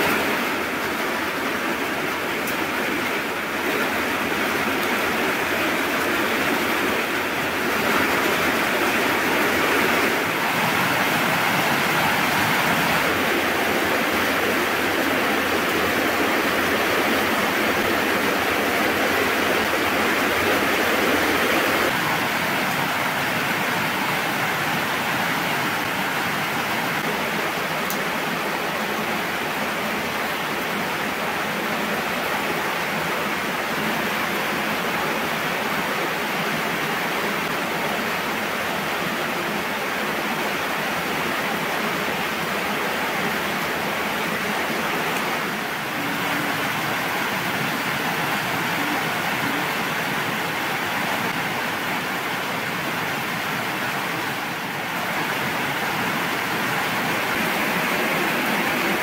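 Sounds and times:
heavy rain: 0.0 - 59.0.

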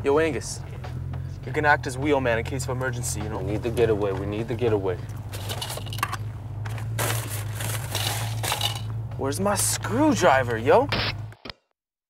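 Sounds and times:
rustling and crinkling: 5.0 - 9.0.

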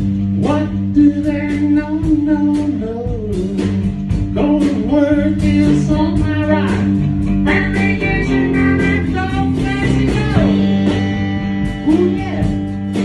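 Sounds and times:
electric guitars strumming chords: 0.0 - 13.0
person singing: 0.4 - 11.0, 11.6 - 13.0.

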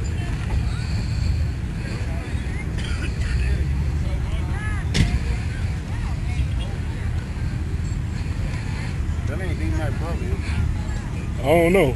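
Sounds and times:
faint distant voices: 0.0 - 11.9
low rumbling outdoor noise: 0.0 - 11.9.

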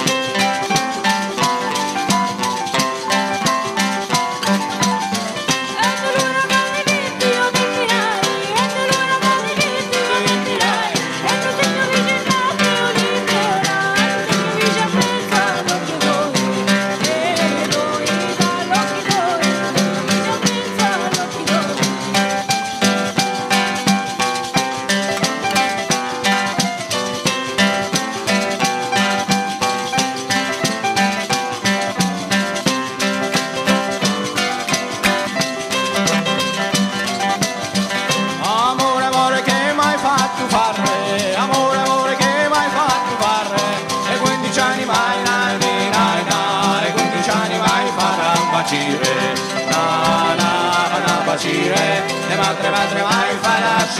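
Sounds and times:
frame drum fast beat: 0.0 - 53.9
guitar: 0.0 - 53.9
keyboard: 0.0 - 53.9
person singing: 5.4 - 22.6, 37.9 - 53.9.

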